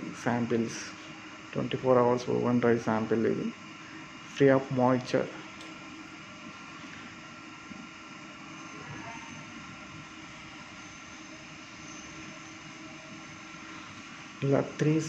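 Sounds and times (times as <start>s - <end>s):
steady mechanical hum: 0.0s - 15.0s.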